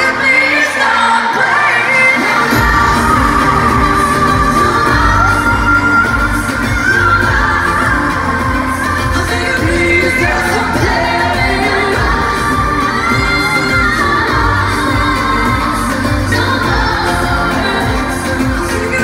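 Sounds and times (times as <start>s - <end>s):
female group singing pop: 0.0s - 19.0s
pop backing track with heavy bass: 0.0s - 19.0s.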